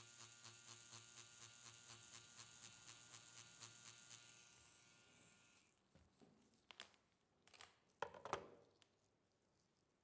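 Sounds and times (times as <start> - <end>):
soft rhythmic needle strokes: 0.0 - 5.1
makeup pen machine buzzing: 0.0 - 5.8.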